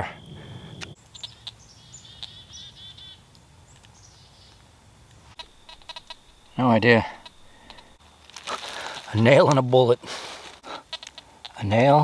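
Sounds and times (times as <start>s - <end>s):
songbird chirping: 0.0s - 12.0s
thin steady high tone: 5.4s - 8.0s.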